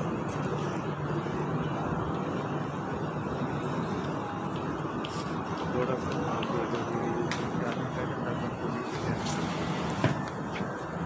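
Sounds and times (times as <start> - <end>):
city traffic hum: 0.0 - 11.0.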